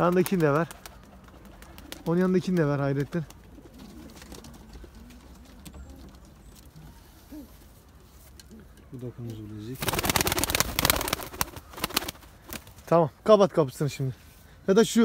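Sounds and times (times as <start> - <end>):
pigeon wings flapping: 0.0 - 6.3, 9.8 - 12.9
pigeons cooing: 0.4 - 8.9.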